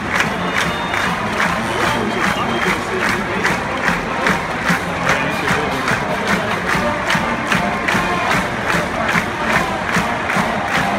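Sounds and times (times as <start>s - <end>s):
marching band playing: 0.0s - 10.9s
stadium crowd cheering: 0.0s - 10.9s.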